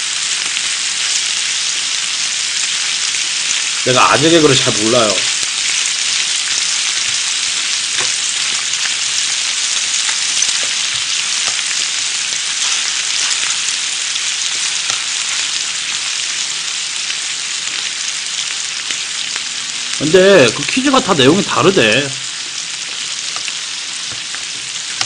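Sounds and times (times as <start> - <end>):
food sizzling on a griddle: 0.0 - 25.0.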